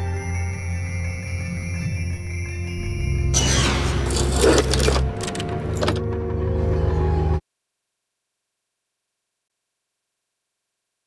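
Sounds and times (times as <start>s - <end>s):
dark droning music: 0.0s - 7.4s.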